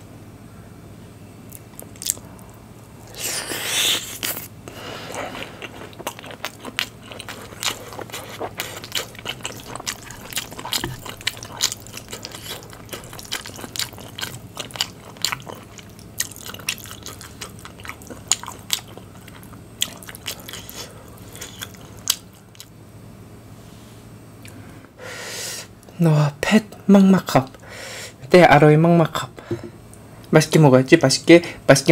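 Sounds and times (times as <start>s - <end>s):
close chewing with wet mouth smacks: 4.1s - 22.7s.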